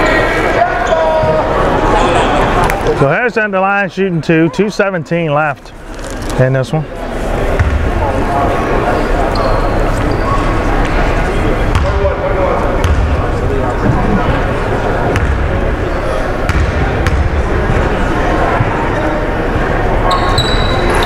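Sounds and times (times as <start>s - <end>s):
voices in large gym: 0.0s - 21.0s
basketball bouncing on hardwood floor: 16.5s - 17.3s.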